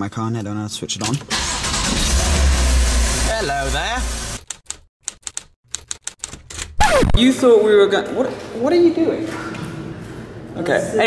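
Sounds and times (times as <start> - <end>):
rapid typewriter key clicks: 4.4 - 6.8.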